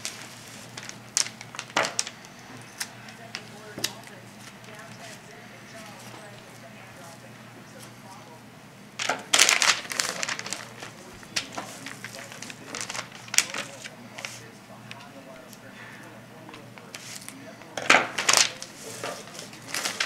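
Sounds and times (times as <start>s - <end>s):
paper crinkling: 0.0s - 8.2s, 9.0s - 15.1s, 16.5s - 20.0s.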